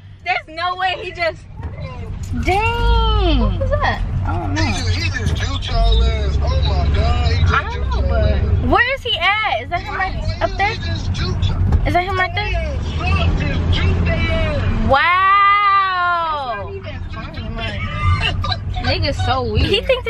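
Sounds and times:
car engine rumble and road noise: 0.0s - 20.0s.

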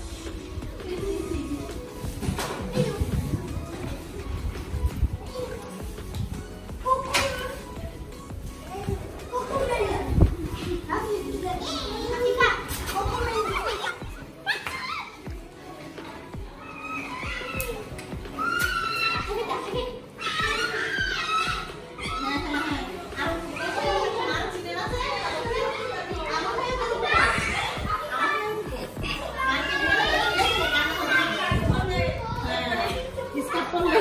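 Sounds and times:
background music: 0.0s - 34.0s
young children chattering and calling: 0.0s - 34.0s.

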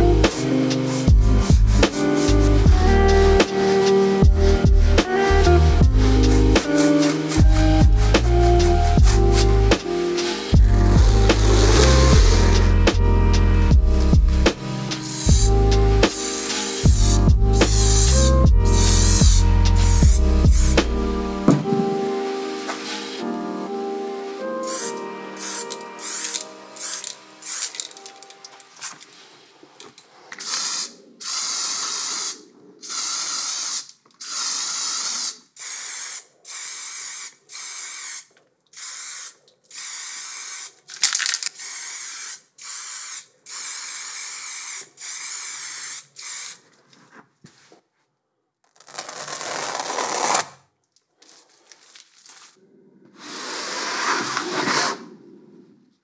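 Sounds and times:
spray paint can hissing: 0.3s - 2.6s, 5.1s - 12.7s, 14.8s - 17.0s, 17.6s - 21.0s, 24.6s - 28.2s, 30.4s - 46.6s.

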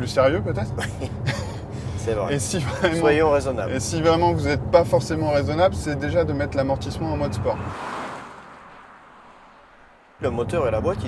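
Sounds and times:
car driving past: 3.6s - 11.0s.

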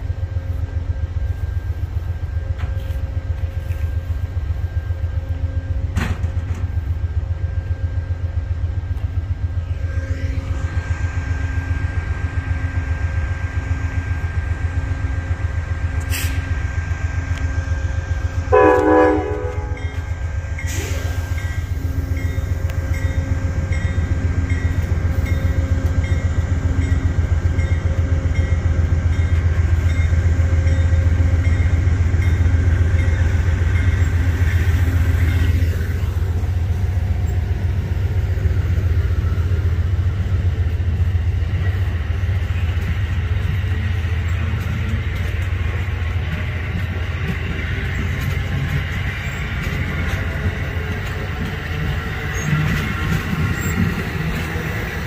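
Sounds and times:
train wheels rumbling on rail: 0.0s - 55.0s
train horn blast: 18.4s - 20.1s.

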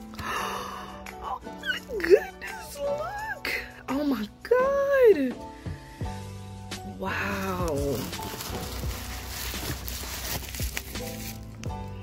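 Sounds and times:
background music: 0.0s - 12.0s
bubble wrap crinkling and crackling: 7.0s - 12.0s.

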